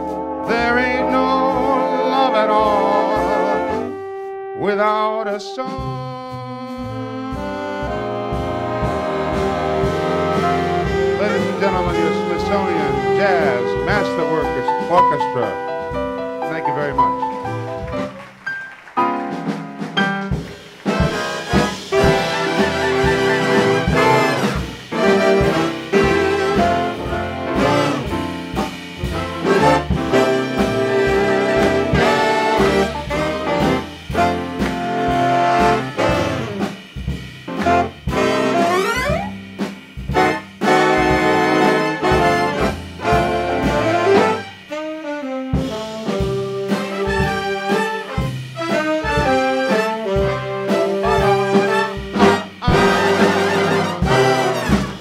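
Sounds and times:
big band swing music: 0:00.0 - 0:55.0.

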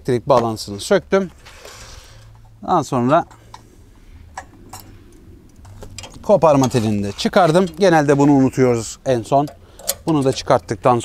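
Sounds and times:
light metallic clicks: 0:09.3 - 0:10.7.

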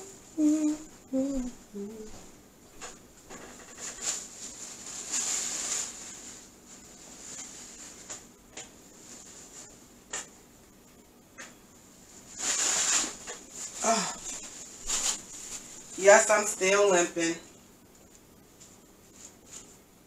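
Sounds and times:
short vocal sound: 0:00.0 - 0:02.3.

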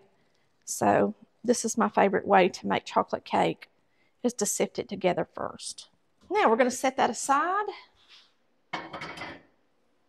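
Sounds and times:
kitchen items clattering: 0:08.8 - 0:09.5.

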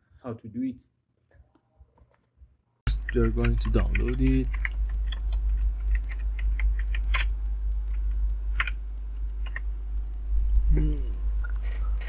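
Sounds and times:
computer keyboard typing: 0:02.9 - 0:12.0
steady low hum: 0:02.9 - 0:12.0.

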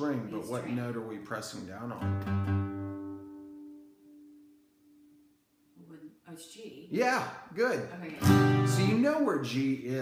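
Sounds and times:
acoustic guitar low note: 0:01.8 - 0:05.3, 0:08.2 - 0:09.2.

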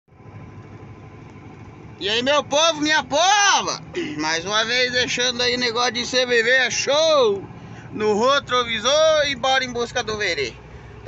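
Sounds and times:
road noise: 0:00.1 - 0:11.0
truck engine running: 0:00.1 - 0:11.0.

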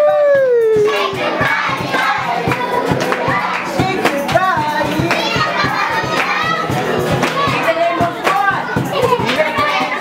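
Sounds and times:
children shouting and laughing: 0:00.0 - 0:03.7, 0:04.8 - 0:10.0
music with steady beat: 0:00.0 - 0:10.0.

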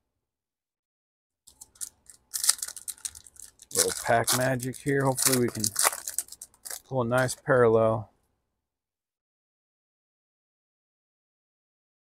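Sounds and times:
foil wrapper crinkling and tearing: 0:01.5 - 0:07.4.

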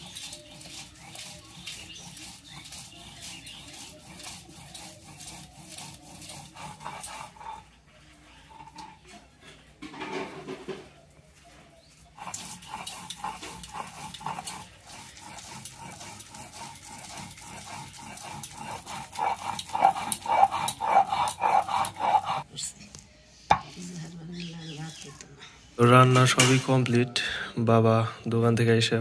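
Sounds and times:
stone roller scraping on stone slab: 0:00.0 - 0:09.1, 0:12.1 - 0:22.4.

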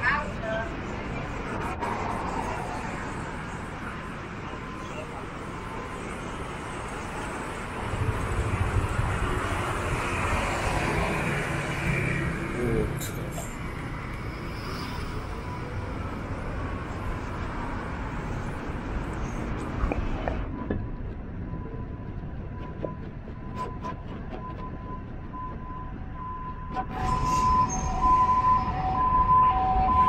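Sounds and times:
street traffic: 0:00.0 - 0:30.0.

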